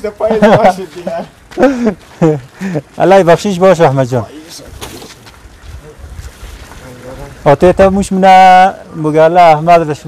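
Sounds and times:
wind buffeting microphone: 4.5s - 8.6s.

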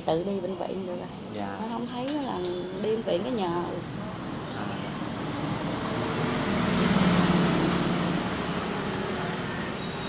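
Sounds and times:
street noise: 0.0s - 10.0s
passing vehicle engine hum: 2.6s - 10.0s.

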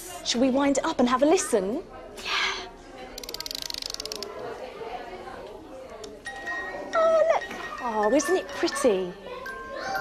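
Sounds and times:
music box ratchet clicks: 3.2s - 4.4s.

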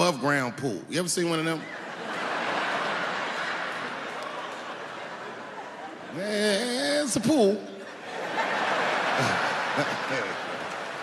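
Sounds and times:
audience laughing and murmuring: 1.6s - 11.0s.

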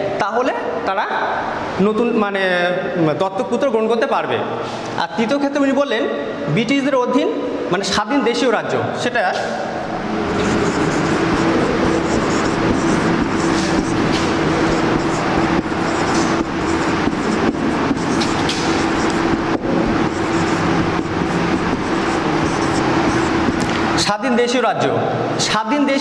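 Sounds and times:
mechanical background hum: 0.0s - 26.0s
marker pen writing on whiteboard: 9.3s - 24.2s.

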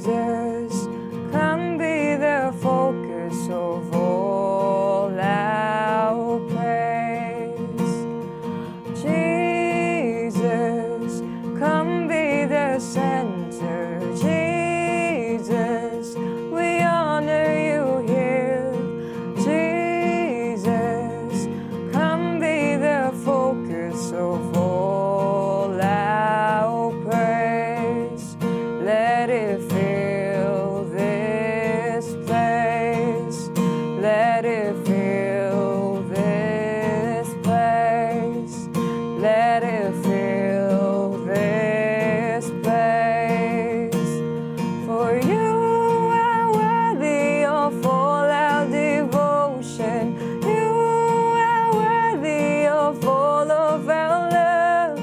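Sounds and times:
acoustic guitar: 0.0s - 55.0s
woman singing: 0.0s - 55.0s.

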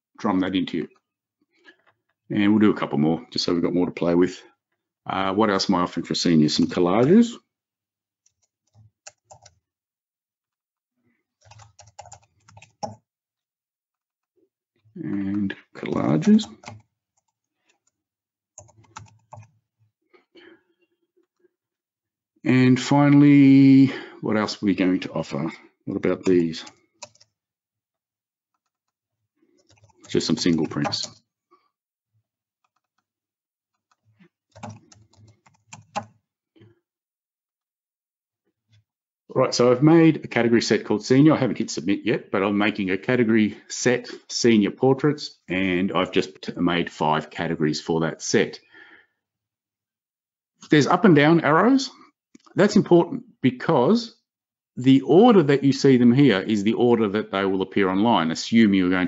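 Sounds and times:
computer keyboard typing: 8.2s - 9.6s, 11.4s - 13.0s, 16.0s - 18.0s, 18.6s - 19.6s, 26.2s - 27.3s, 29.6s - 31.2s, 33.8s - 36.2s.

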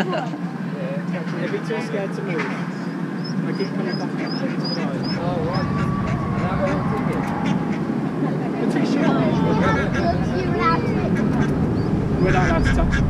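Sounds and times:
people laughing: 0.0s - 0.5s, 8.9s - 11.6s
people talking: 0.0s - 7.6s, 8.2s - 13.0s
duck quacking: 3.5s - 7.9s, 9.0s - 11.6s, 12.2s - 13.0s.

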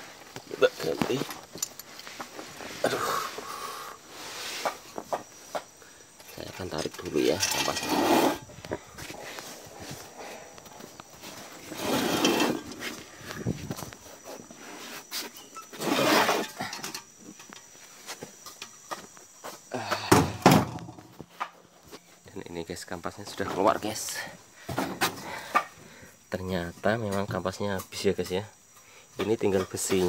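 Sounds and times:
scraping and clatter of parts: 4.5s - 19.1s.

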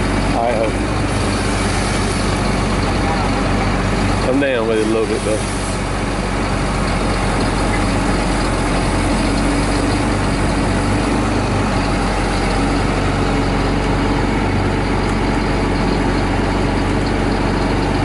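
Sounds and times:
heavy diesel engine idling: 0.0s - 18.0s.

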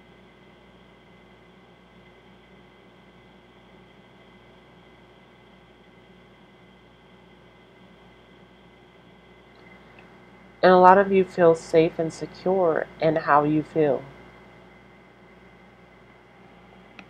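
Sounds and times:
faint steady hums: 0.0s - 17.0s.

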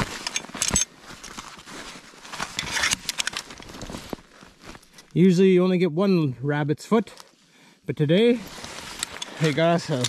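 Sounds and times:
snow crunching and scraping: 0.0s - 5.5s, 8.2s - 10.0s
metal trap chain clinking: 9.0s - 10.0s.

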